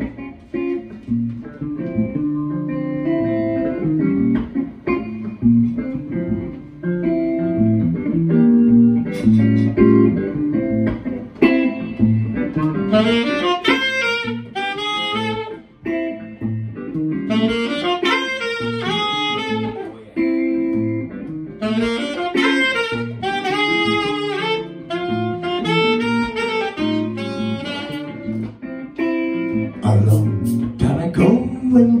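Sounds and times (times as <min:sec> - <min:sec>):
electric guitar: 0:00.0 - 0:32.0
electric bass: 0:00.9 - 0:12.9, 0:29.3 - 0:32.0
saxophone melody: 0:01.6 - 0:30.8.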